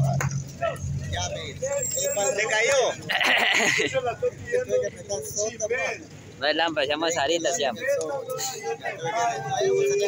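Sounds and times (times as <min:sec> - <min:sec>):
men calling out: 0:07.0 - 0:10.0.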